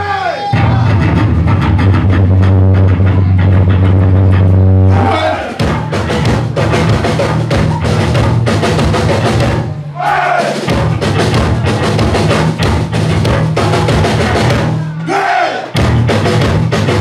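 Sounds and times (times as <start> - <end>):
hardcore punk band playing: 0.5 - 17.0.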